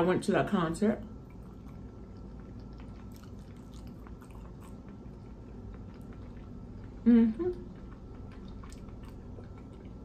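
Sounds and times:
low steady hum: 0:00.0 - 0:10.0
chewing with mouth closed: 0:01.1 - 0:10.0.

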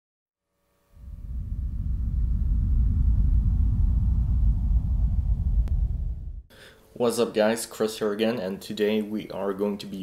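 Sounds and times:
deep steady rumble: 0:01.0 - 0:06.5.

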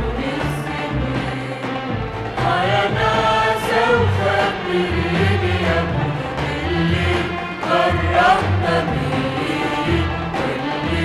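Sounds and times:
bass notes: 0:00.0 - 0:11.0
orchestral accompaniment: 0:00.0 - 0:11.0
person singing: 0:02.4 - 0:11.0.

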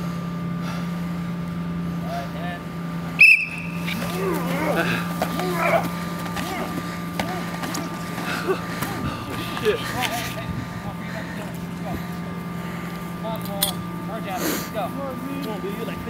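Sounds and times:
whistle blast: 0:03.2 - 0:04.0
people shouting and yelling: 0:03.2 - 0:12.2.

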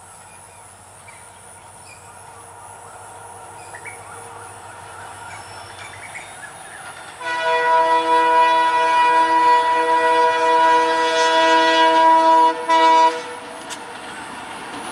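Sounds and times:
diesel train running: 0:00.0 - 0:14.9
train horn: 0:07.2 - 0:13.7.

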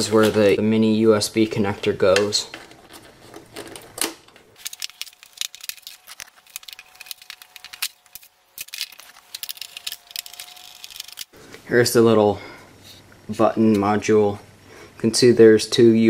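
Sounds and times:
plastic and metal parts clicking: 0:02.2 - 0:11.3.

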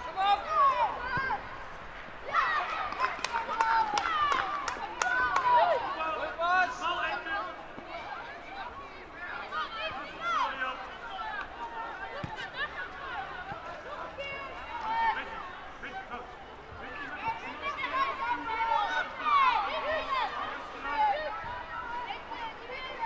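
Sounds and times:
people shouting and calling out: 0:00.0 - 0:23.0.

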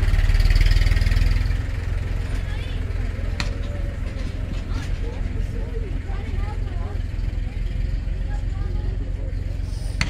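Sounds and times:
steady low rumble: 0:01.3 - 0:10.0
distant voices talking: 0:01.5 - 0:10.0.

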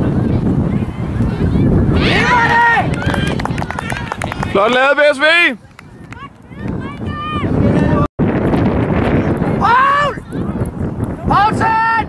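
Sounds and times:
sharp handclaps: 0:02.8 - 0:04.8.

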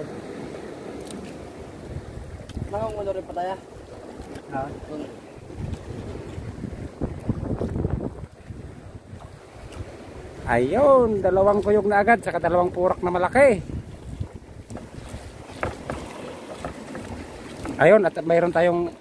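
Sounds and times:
water washing around boat: 0:00.0 - 0:19.0
wind buffeting microphone: 0:01.5 - 0:18.0.

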